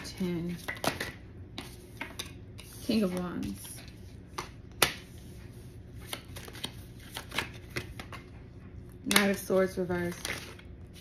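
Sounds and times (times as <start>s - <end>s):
cards snapping while shuffled: 6.0s - 8.3s.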